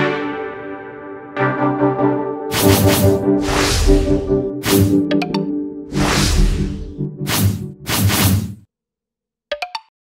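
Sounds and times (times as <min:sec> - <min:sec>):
whoosh sound effects: 0:02.5 - 0:05.0, 0:05.9 - 0:08.5.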